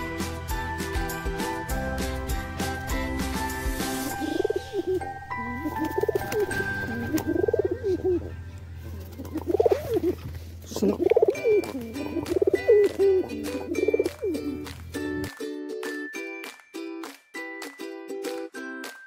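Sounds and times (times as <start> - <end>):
background music: 0.0 - 19.0
pigeons cooing: 4.1 - 8.3, 9.0 - 14.4.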